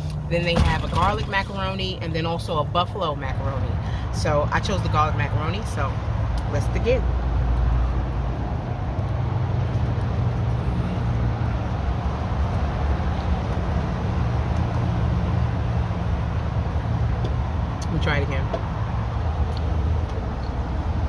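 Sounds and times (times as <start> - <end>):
road traffic rumble: 0.0 - 21.0.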